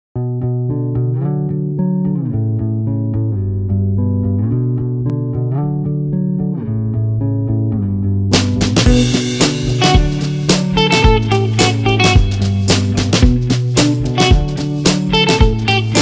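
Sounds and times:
plucked bass and guitar: 0:00.2 - 0:16.0.

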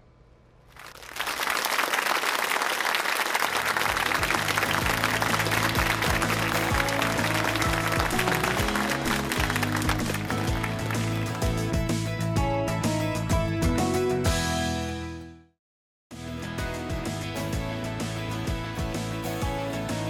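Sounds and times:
audience applause: 0:00.8 - 0:11.7
television theme music: 0:03.4 - 0:15.4, 0:16.1 - 0:20.0.

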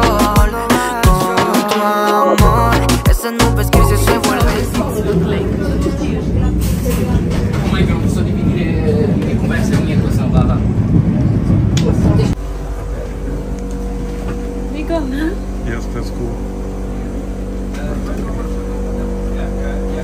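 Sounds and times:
tram rumbling along rails: 0:04.8 - 0:13.5
steady hum: 0:12.3 - 0:20.0.

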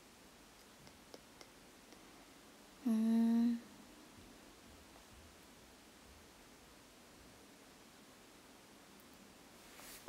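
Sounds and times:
woman humming: 0:02.8 - 0:03.7.

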